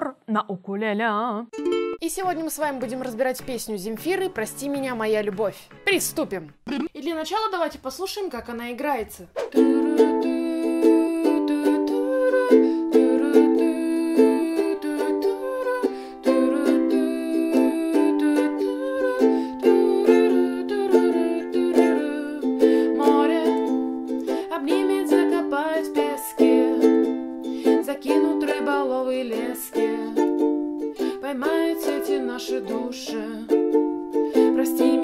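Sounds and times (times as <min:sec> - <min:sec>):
ukulele strumming: 0:01.5 - 0:06.5, 0:09.4 - 0:35.0.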